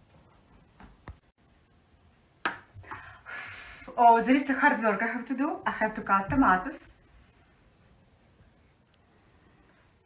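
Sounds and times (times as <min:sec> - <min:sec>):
cutting board knocking on countertop: 0:02.4 - 0:02.7.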